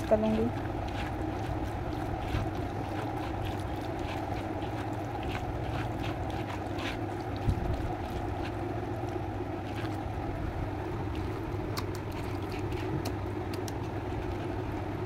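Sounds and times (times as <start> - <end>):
hand mashing wet vegetables: 0.0 - 15.0
steady low hum: 0.0 - 15.0.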